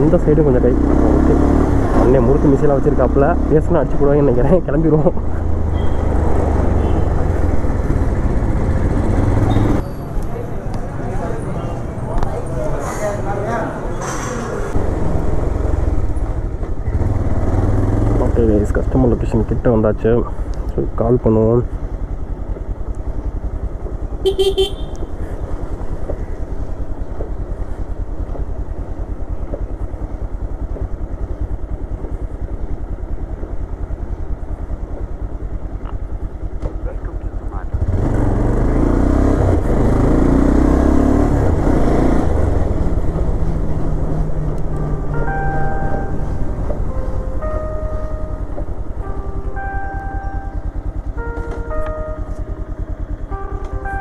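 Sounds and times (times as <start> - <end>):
motorcycle engine running: 14.8 - 54.0.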